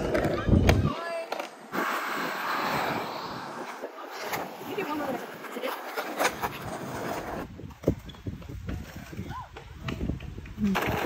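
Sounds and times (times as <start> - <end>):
skateboard wheels rolling on concrete: 0.0 - 11.0.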